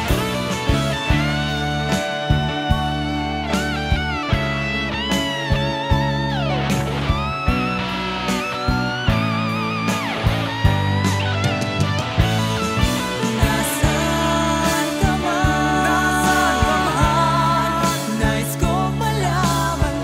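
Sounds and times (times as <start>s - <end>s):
steady drum beat: 0.0s - 4.7s, 10.0s - 20.0s
bass: 0.0s - 20.0s
electric guitar solo: 0.0s - 20.0s.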